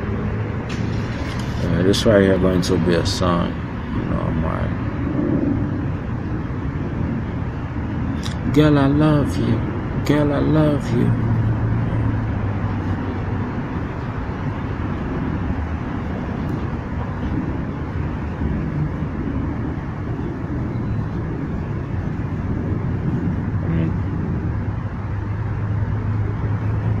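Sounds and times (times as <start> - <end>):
low motor hum: 0.0 - 27.0
street noise: 0.0 - 27.0.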